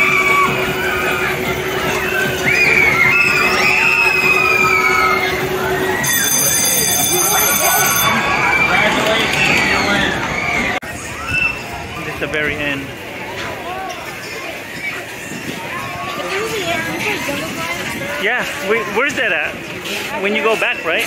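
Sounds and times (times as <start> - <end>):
children shouting: 0.0 - 6.3, 7.1 - 11.9
high electronic tone: 6.0 - 8.2.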